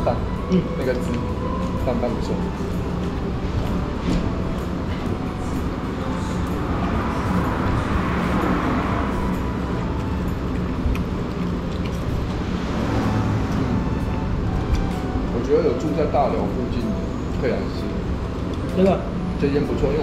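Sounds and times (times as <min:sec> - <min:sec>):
low traffic rumble and hiss: 0:00.0 - 0:20.0.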